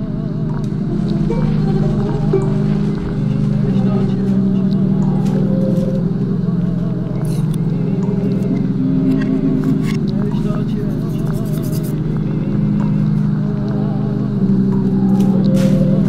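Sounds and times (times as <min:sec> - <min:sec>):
low sustained drone tones: 0:00.0 - 0:16.0
thin warbling tones: 0:00.7 - 0:16.0.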